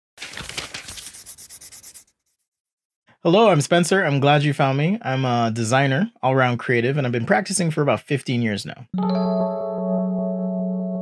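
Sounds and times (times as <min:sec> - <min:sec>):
scratchy rubbing on paper: 0:00.7 - 0:02.6.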